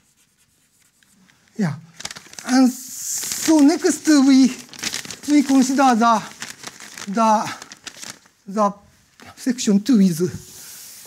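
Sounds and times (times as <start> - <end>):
chalk scratching on blackboard: 0.0 - 1.2.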